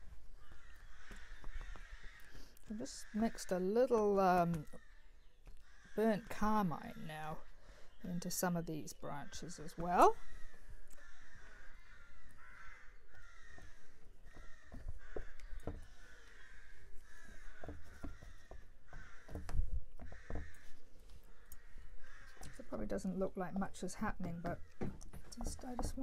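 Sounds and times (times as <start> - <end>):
crow cawing: 0.4 - 3.6, 5.6 - 6.3, 10.2 - 22.7
dull knocks: 17.1 - 20.6.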